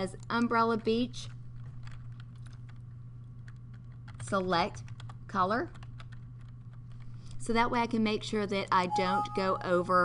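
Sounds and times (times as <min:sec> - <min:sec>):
low electrical hum: 0:00.0 - 0:10.0
faint keyboard keystrokes: 0:01.2 - 0:07.4.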